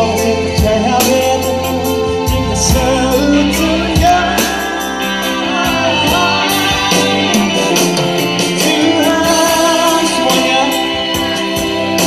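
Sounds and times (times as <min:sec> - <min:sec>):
live band music: 0:00.0 - 0:12.0.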